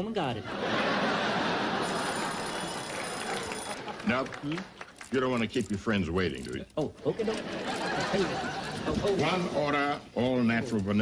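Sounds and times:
audience laughing: 0.4 - 4.8, 7.1 - 10.0.

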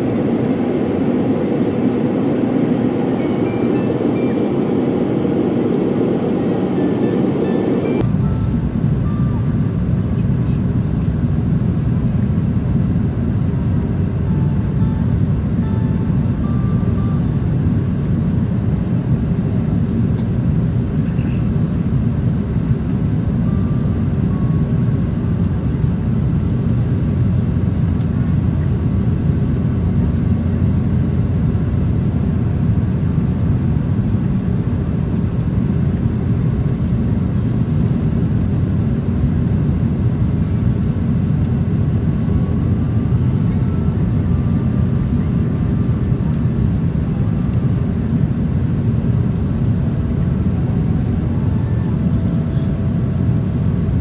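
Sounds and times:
jet engine hum: 0.0 - 54.0.

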